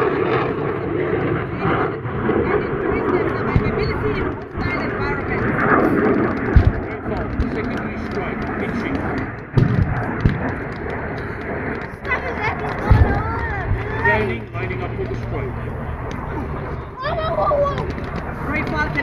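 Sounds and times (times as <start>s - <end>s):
crowd voices: 0.0s - 9.4s, 10.0s - 19.0s
pyrotechnic explosions: 0.0s - 19.0s.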